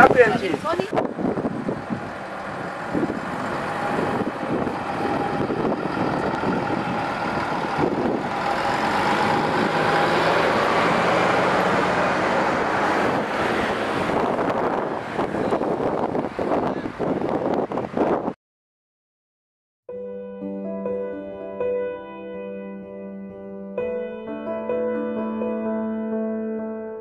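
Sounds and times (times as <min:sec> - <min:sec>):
diesel bus driving past: 0:00.0 - 0:18.1.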